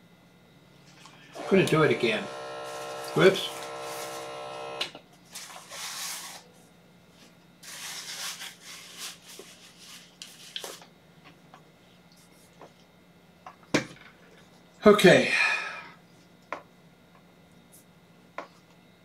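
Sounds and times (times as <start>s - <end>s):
faint steady hum: 0.0s - 19.0s
electric air pump humming: 1.0s - 6.5s.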